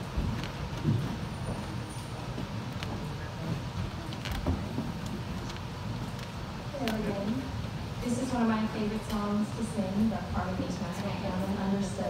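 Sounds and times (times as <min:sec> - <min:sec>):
low room rumble: 0:00.0 - 0:12.0
audience murmur: 0:00.9 - 0:12.0.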